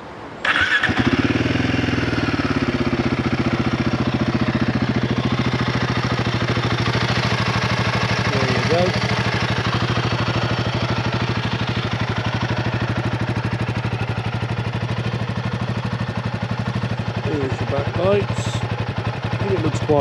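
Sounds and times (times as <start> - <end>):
motorcycle engine idling: 0.4 - 20.0.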